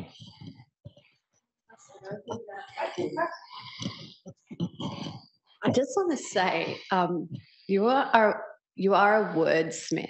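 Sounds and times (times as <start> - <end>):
muffled murmuring voice: 0.0 - 0.7, 1.8 - 7.6.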